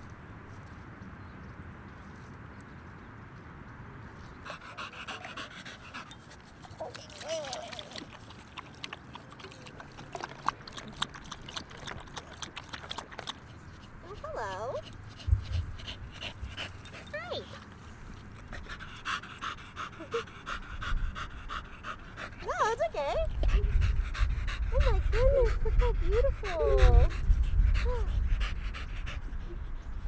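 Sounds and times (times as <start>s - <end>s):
dog panting: 4.3s - 30.0s.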